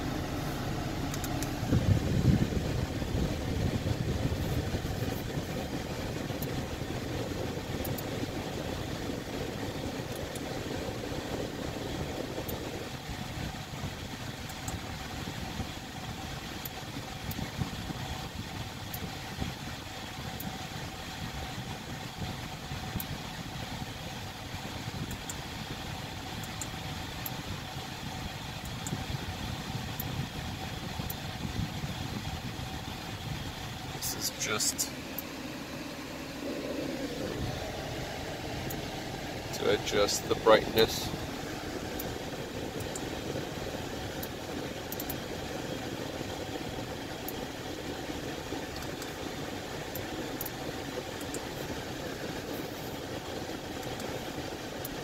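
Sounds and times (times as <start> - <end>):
car engine idling: 0.0 - 55.0.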